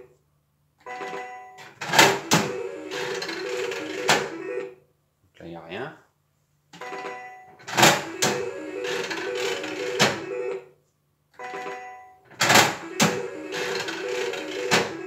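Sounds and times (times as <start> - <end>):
slot machine reels whirring: 1.8 - 4.7, 7.6 - 10.6, 11.4 - 15.0.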